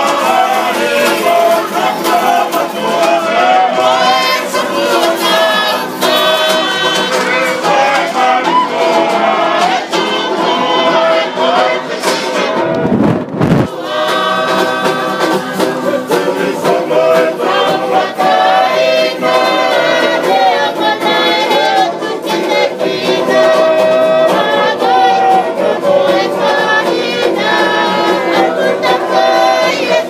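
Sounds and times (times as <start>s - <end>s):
choir singing in chorus: 0.0s - 30.0s.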